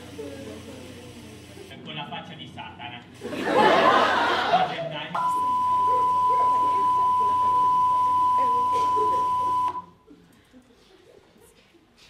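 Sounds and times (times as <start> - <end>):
steady test tone beep: 5.2 - 10.0
faint voices: 5.2 - 12.0.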